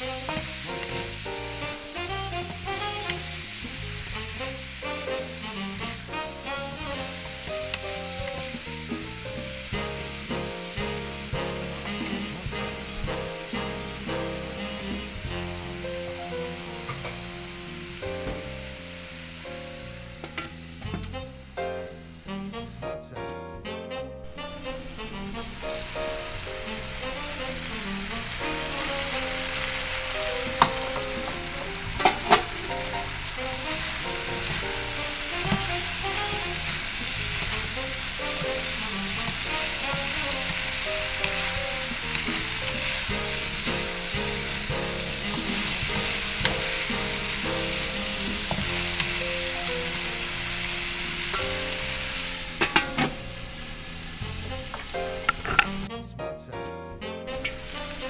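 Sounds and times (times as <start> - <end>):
wooden spatula scraping a wok: 0.0 - 18.2, 24.3 - 55.9
food sizzling in a wok: 0.0 - 22.6, 24.2 - 55.9, 57.3 - 58.0.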